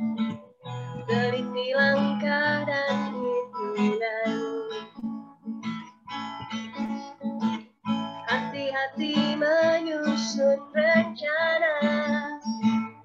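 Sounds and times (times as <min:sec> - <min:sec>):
strummed acoustic guitar: 0:00.0 - 0:13.0
woman singing: 0:00.9 - 0:05.0, 0:08.2 - 0:12.8.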